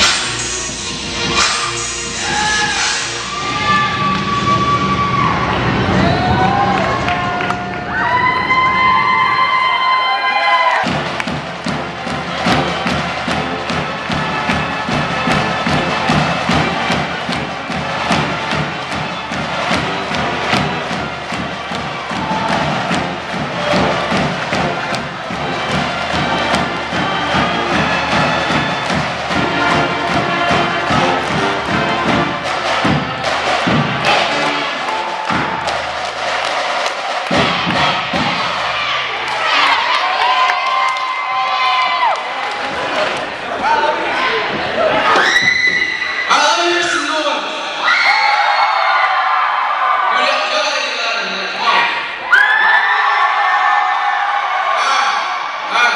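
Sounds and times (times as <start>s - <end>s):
crowd cheering: 0.0s - 55.9s
steady drum beat: 10.7s - 39.2s
brass band playing: 10.7s - 39.7s.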